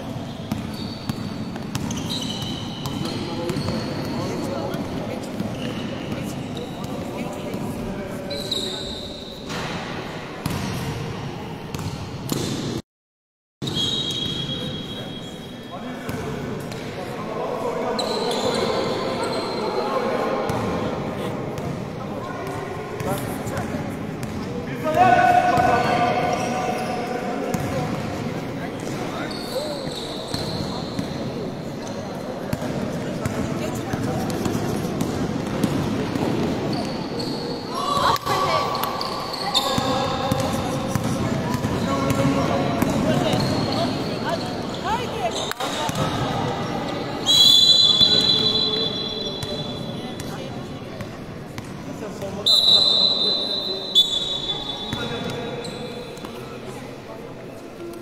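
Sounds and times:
high-pitched shoe squeaks: 0.2s - 4.3s
basketball bouncing on court: 0.4s - 4.1s, 10.4s - 10.9s, 11.7s - 12.6s.

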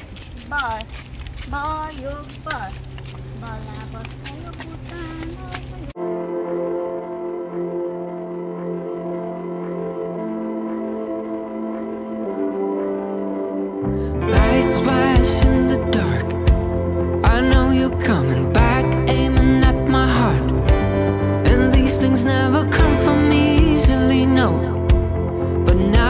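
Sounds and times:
children chattering: 3.4s - 6.0s
slow sustained chords music: 5.9s - 26.0s.

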